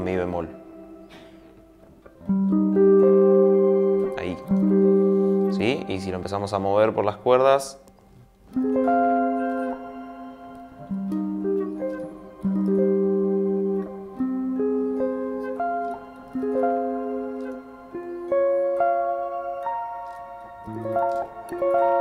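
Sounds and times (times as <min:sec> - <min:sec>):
electric guitar picked arpeggios: 0:00.0 - 0:22.0.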